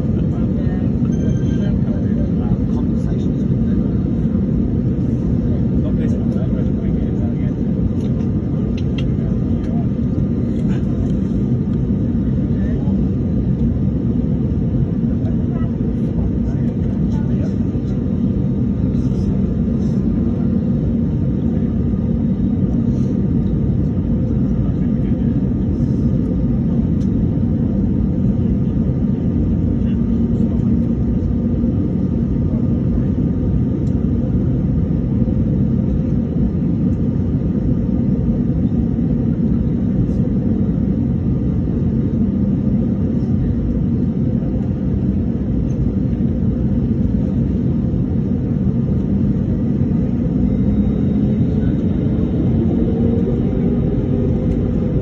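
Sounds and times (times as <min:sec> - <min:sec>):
airliner engines idling: 0:00.0 - 0:55.0.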